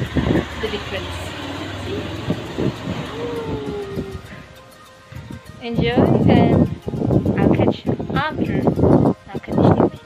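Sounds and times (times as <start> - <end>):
vehicle passing tone: 0.0 - 6.2
traffic hiss and rumble: 0.0 - 9.8.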